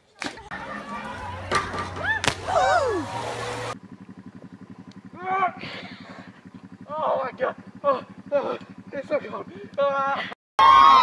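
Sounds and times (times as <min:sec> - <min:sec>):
voices calling out: 0:00.2 - 0:03.8
people laughing: 0:00.5 - 0:03.6
low pulsing engine hum: 0:00.5 - 0:10.3.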